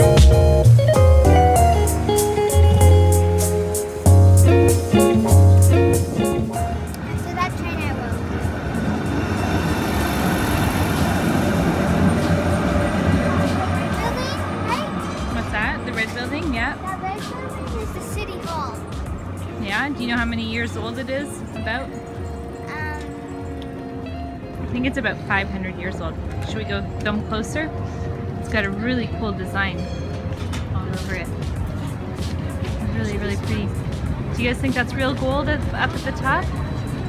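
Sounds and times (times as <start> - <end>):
acoustic guitar music: 0.0 - 8.2, 13.3 - 37.0
city street noise: 0.0 - 37.0
tram rolling on tracks: 4.3 - 37.0
voices of people: 6.6 - 37.0.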